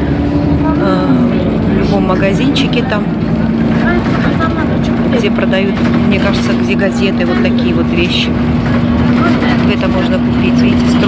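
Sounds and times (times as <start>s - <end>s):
bus engine and road noise: 0.0s - 11.0s
constant low hum: 0.0s - 11.0s.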